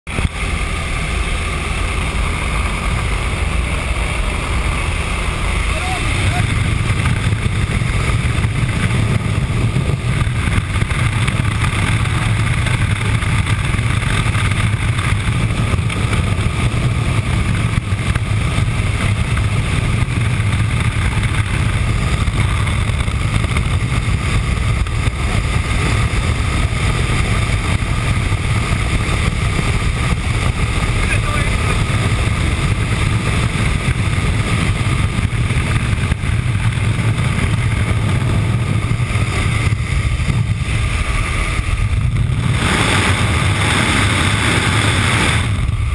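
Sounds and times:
aircraft engine drone: 0:00.1 - 0:45.9
wind rushing: 0:00.1 - 0:45.9.

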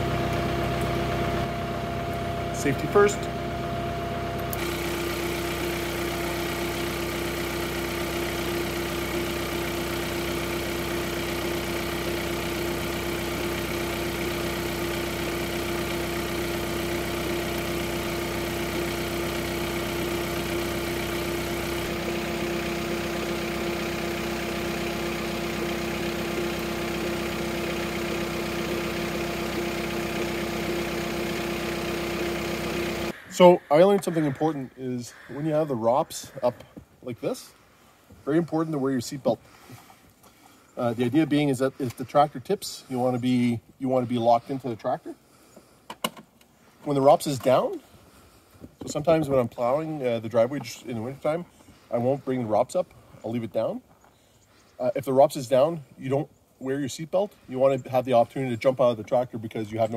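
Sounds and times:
tractor diesel engine idling: 0:00.0 - 0:45.5, 0:46.7 - 0:53.8.

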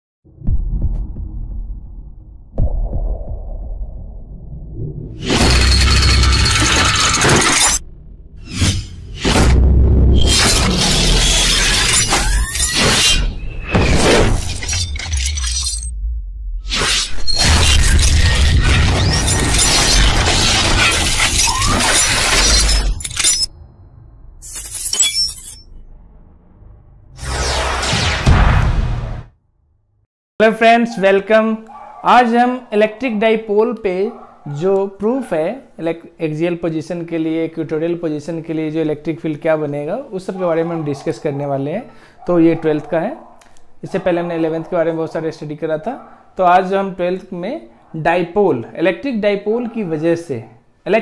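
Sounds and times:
deep booming hits: 0:00.2 - 0:05.3, 0:07.8 - 0:10.2, 0:25.8 - 0:29.4
crashing shattering burst: 0:05.2 - 0:07.8, 0:17.4 - 0:23.6
bright clinking tones: 0:24.4 - 0:25.8.

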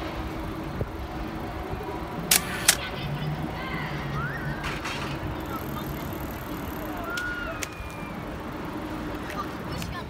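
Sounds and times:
traffic noise: 0:00.0 - 0:10.0
sharp clicks: 0:02.3 - 0:02.8.

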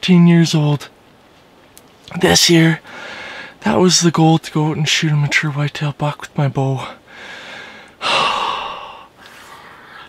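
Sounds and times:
man breathing hard: 0:02.8 - 0:03.6, 0:07.0 - 0:10.0.

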